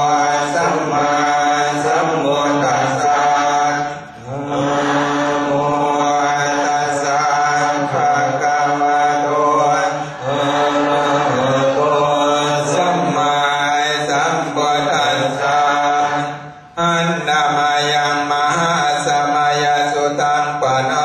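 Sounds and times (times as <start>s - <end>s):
low male voices chanting: 0.0s - 21.0s.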